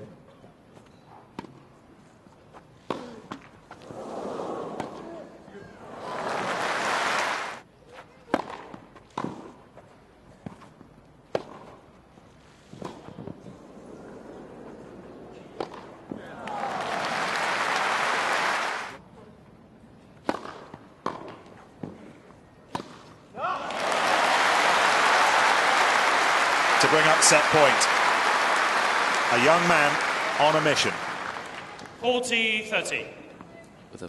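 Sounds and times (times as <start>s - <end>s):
crowd applause: 6.0s - 7.6s, 16.5s - 19.0s, 23.5s - 32.0s
tennis balls struck by rackets: 20.2s - 22.0s, 22.7s - 23.1s.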